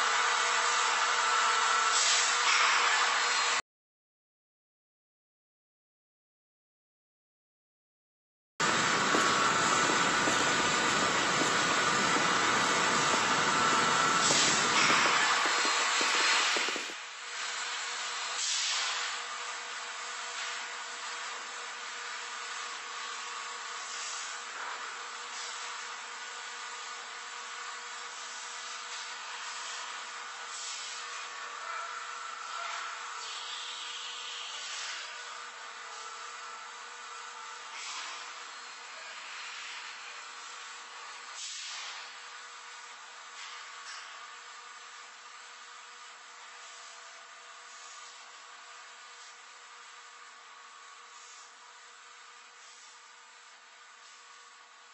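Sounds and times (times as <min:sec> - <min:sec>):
loud rushing static: 0:08.6 - 0:17.0
tape hiss: 0:08.6 - 0:17.0.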